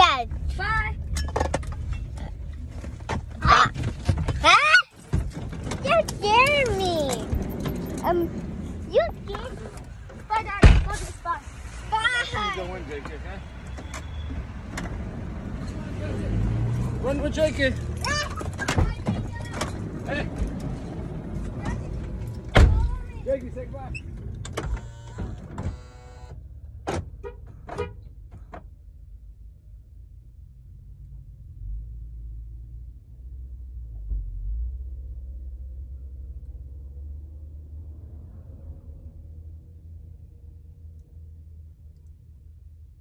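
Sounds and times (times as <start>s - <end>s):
car engine rumble: 0.0s - 43.0s.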